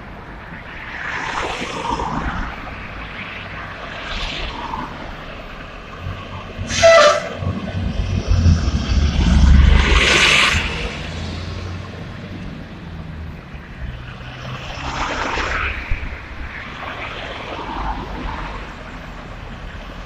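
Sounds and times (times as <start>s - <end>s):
vehicle passing close by: 6.0s - 18.8s
loud pitched horn toot: 6.6s - 7.6s.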